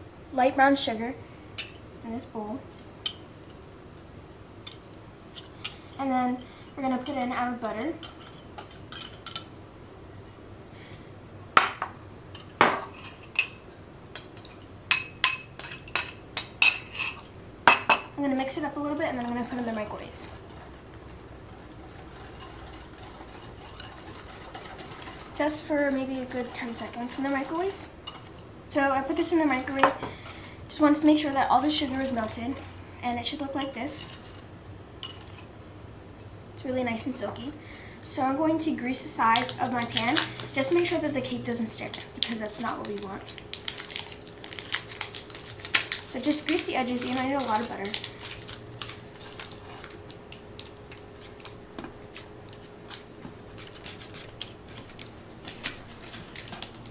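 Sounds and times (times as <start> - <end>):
metal spoon clinking on bowls: 7.0 - 9.5
whisk clinking against glass bowl: 22.2 - 28.3.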